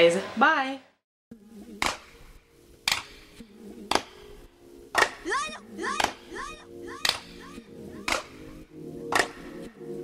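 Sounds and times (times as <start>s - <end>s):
song with held chords: 1.4s - 10.0s
sharp clap-like beat: 9.1s - 9.5s.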